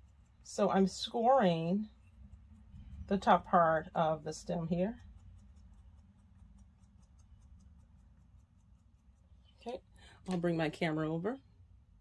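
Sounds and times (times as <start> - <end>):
tool scratching clay: 0.0 - 9.8.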